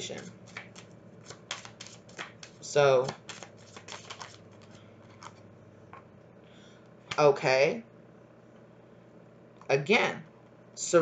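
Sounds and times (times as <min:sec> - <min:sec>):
deck of cards being shuffled: 0:00.0 - 0:05.4.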